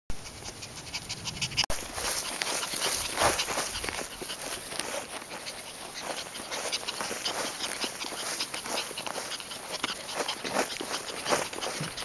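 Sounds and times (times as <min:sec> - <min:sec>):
puppy panting: 0:00.1 - 0:12.0.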